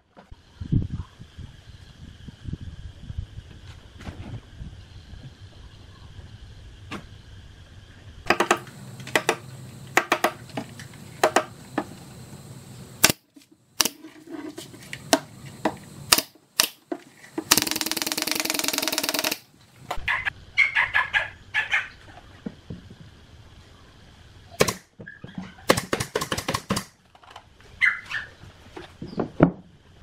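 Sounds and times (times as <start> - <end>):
nail gun firing: 8.3 - 10.4, 13.0 - 14.0, 16.1 - 16.8, 17.4 - 19.5, 24.6 - 24.9, 25.7 - 27.0.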